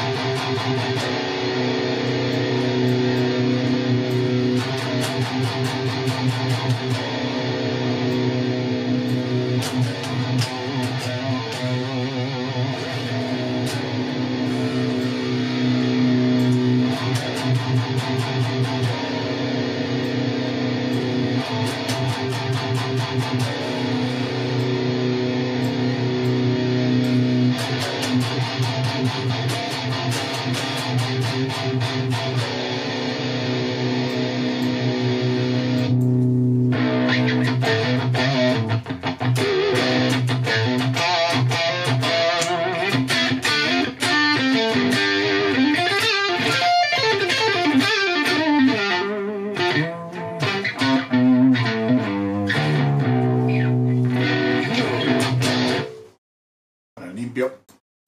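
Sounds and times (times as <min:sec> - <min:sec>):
distorted electric guitar riff: 0:00.0 - 0:56.2.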